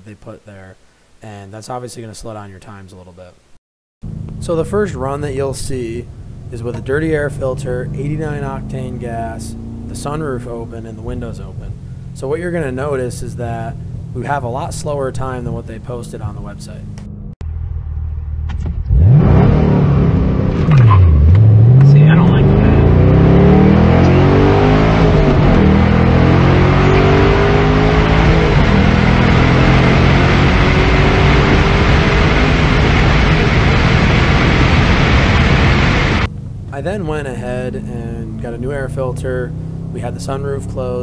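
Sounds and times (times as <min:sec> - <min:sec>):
car engine at full throttle: 0:04.0 - 0:41.0
wind and road noise: 0:04.0 - 0:41.0.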